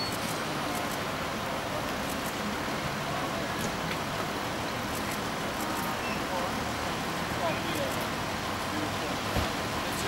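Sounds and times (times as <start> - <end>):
faint indistinct voices: 0.0 - 10.0
traffic hum: 0.0 - 10.0.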